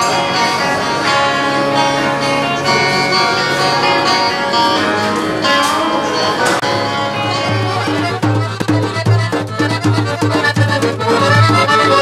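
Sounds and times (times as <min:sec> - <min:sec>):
electric guitar playing: 0:00.0 - 0:12.0.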